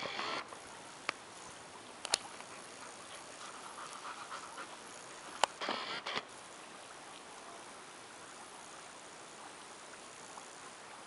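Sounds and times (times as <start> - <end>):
dog panting: 2.4 - 5.3.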